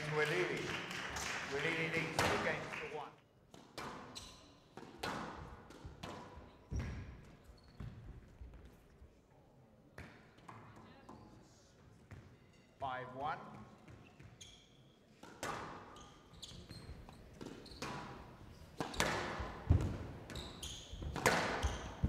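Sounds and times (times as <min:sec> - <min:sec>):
squash ball hitting rackets and walls: 0:03.5 - 0:08.1, 0:15.2 - 0:16.0, 0:16.9 - 0:22.0.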